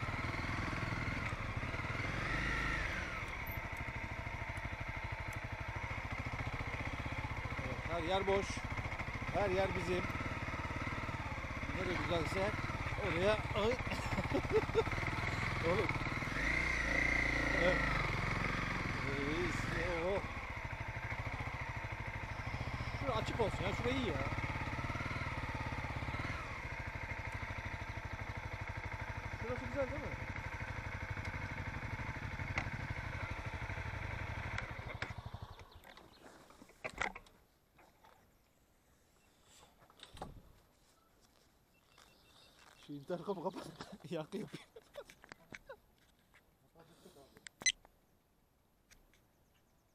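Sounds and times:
vehicle engine running: 0:00.0 - 0:35.9.

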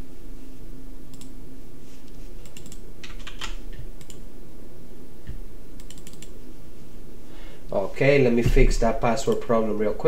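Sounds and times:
steady low hum: 0:00.0 - 0:10.0
keyboard typing: 0:02.4 - 0:04.2, 0:05.8 - 0:06.4.

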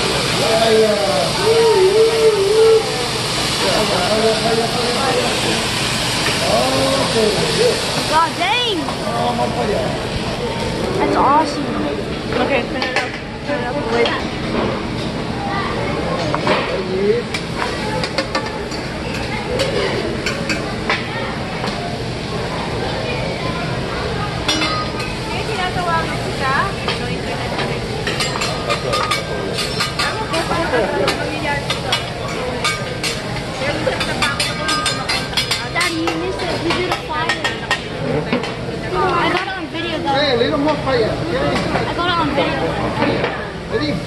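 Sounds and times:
background voices chattering: 0:00.0 - 0:44.0
vegetables sizzling on griddle: 0:00.0 - 0:44.0.

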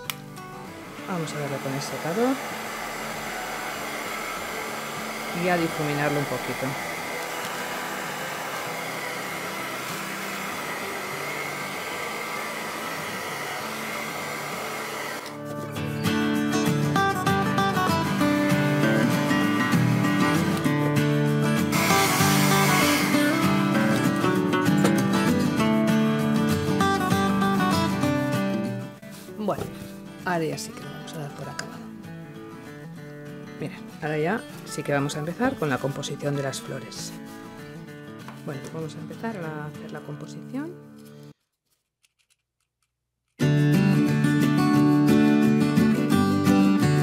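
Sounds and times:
hair dryer running: 0:00.0 - 0:15.4, 0:17.6 - 0:20.8, 0:21.5 - 0:25.2
background music: 0:00.0 - 0:41.3, 0:43.4 - 0:47.0.

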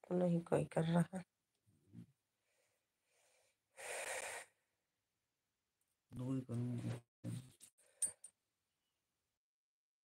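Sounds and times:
woman breathing: 0:02.4 - 0:04.6.

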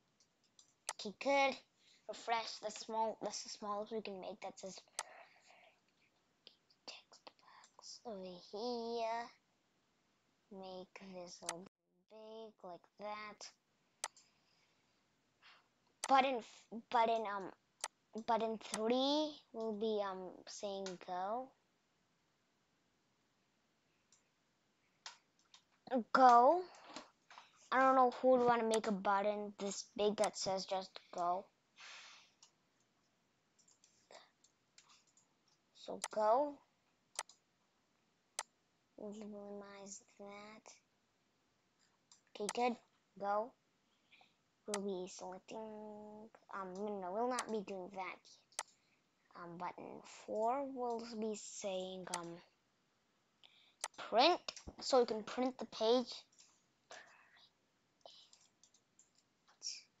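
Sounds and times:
faint whispering: 0:04.5 - 0:05.8, 0:06.5 - 0:08.5, 0:56.9 - 0:57.5, 0:58.1 - 0:58.4
keyboard and mouse clicks: 0:11.4 - 0:11.7, 0:14.0 - 0:14.3, 0:16.0 - 0:16.3, 0:17.1 - 0:19.0, 0:25.0 - 0:29.0, 0:29.6 - 0:31.3, 0:33.6 - 0:35.3, 0:36.0 - 0:36.3, 0:37.2 - 0:37.4, 0:42.1 - 0:42.7, 0:46.4 - 0:47.6, 0:48.6 - 0:48.8, 0:50.9 - 0:51.2, 0:52.1 - 0:52.4, 0:53.8 - 0:54.9, 0:58.1 - 0:59.7.

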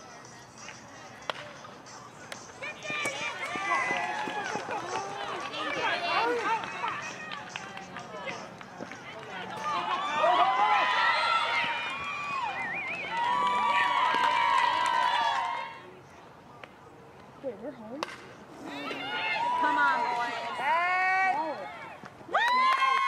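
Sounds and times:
spectators shouting and cheering: 0:02.6 - 0:15.9, 0:18.6 - 0:23.0.

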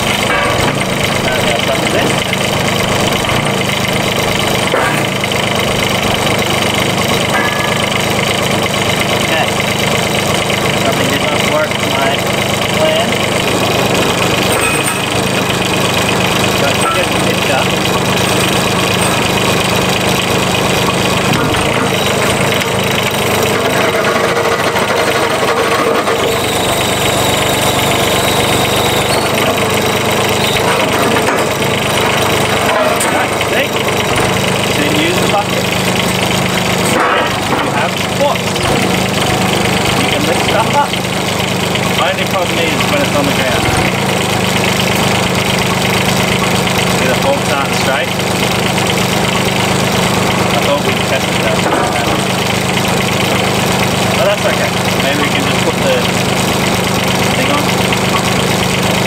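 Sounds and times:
excavator engine running: 0:00.0 - 0:59.0
hydraulics working: 0:00.0 - 0:59.0.

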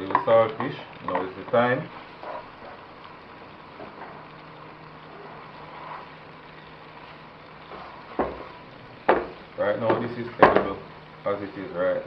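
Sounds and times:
fish sizzling in oil: 0:00.0 - 0:12.0
spatula stirring in wok: 0:05.0 - 0:09.5.

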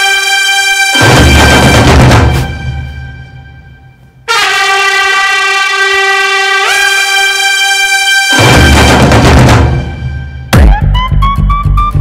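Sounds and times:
sustained horn-like music tone: 0:00.0 - 0:10.6.

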